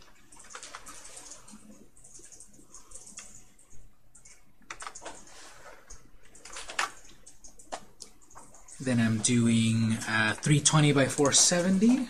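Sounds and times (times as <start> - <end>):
computer keyboard clicking: 0.0 - 12.0.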